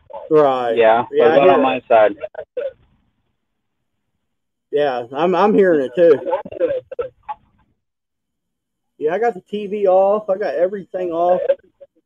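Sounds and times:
man's voice: 0.3s - 2.4s, 4.8s - 6.9s, 9.0s - 11.6s.

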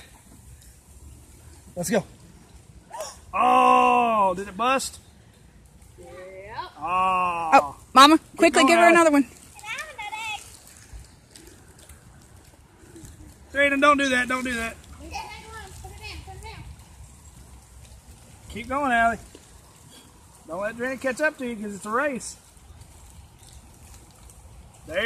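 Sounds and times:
faint rustles: 9.0s - 25.0s.

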